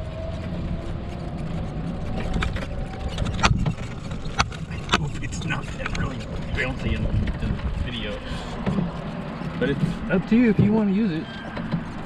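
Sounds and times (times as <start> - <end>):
car engine rumble: 0.0 - 12.0
road noise: 0.0 - 12.0.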